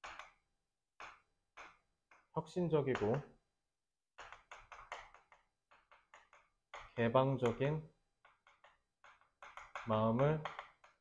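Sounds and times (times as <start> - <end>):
chalk tapping on chalkboard: 0.0 - 3.4, 4.1 - 11.0.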